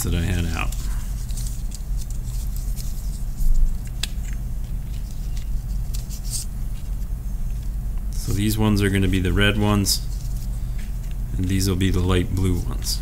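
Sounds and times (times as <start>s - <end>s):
paper strips rustling: 0.0s - 13.0s.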